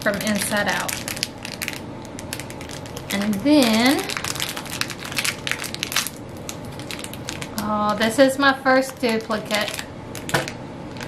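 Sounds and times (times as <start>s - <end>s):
plastic wrapper crinkling: 0.0s - 8.1s, 8.7s - 11.0s.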